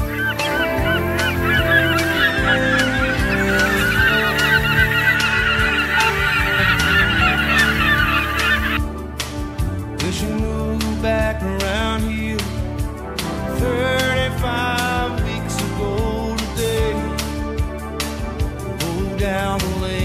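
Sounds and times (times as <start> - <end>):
flock of birds calling: 0.0 - 8.8
soft sustained music: 0.0 - 20.0.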